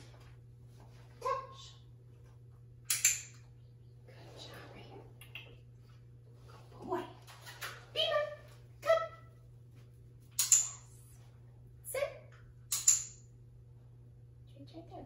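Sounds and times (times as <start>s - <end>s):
sharp clicks: 2.9s - 3.4s, 12.7s - 13.2s.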